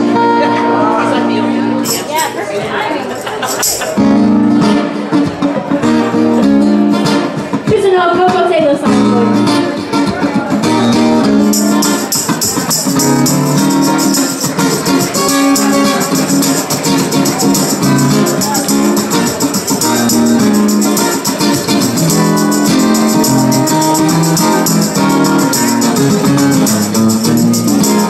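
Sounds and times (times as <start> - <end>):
acoustic guitar playing: 0.0 - 28.0
shaken hand percussion: 1.8 - 2.5, 3.1 - 4.8, 10.7 - 28.0.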